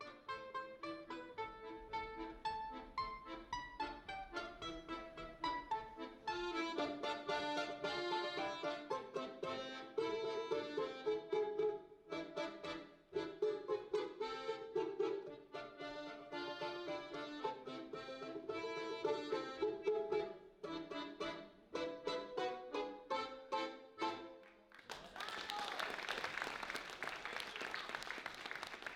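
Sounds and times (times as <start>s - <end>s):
plucked balalaika notes: 0.0s - 24.4s
accordion held tones: 0.0s - 24.7s.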